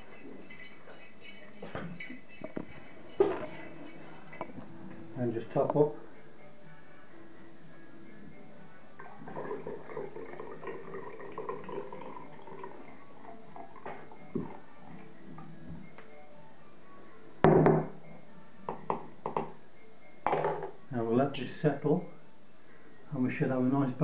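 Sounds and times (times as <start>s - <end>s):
liquid trickling into glass bottle: 9.0s - 14.6s
knocks on wooden table: 17.4s - 17.9s.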